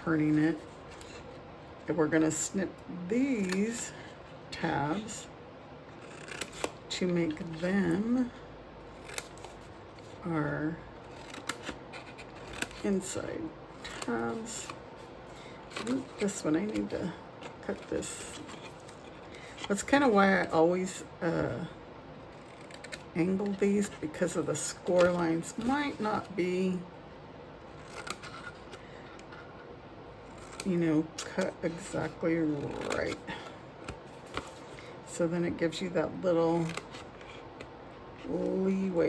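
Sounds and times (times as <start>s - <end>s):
scissors cutting cardstock: 3.2s - 3.9s, 6.0s - 8.3s, 8.9s - 10.1s, 11.0s - 13.2s, 13.8s - 14.8s, 15.7s - 19.8s, 22.3s - 26.4s, 30.2s - 34.6s, 36.6s - 37.4s.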